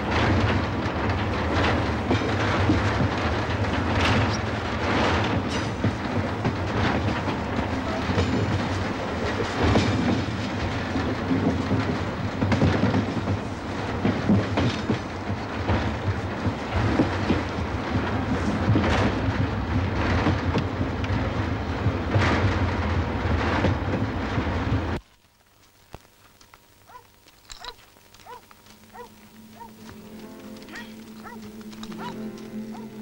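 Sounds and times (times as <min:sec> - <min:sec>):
wagon knocks and rattles: 0:00.0 - 0:24.9, 0:26.9 - 0:33.0
railway wagon rumbling on rails: 0:00.0 - 0:25.0, 0:27.9 - 0:33.0.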